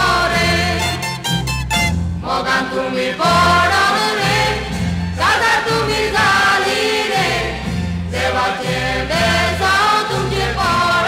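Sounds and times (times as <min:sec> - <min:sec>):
voices singing: 0:00.0 - 0:01.2, 0:02.2 - 0:11.0
band accompaniment with bass line: 0:00.0 - 0:11.0.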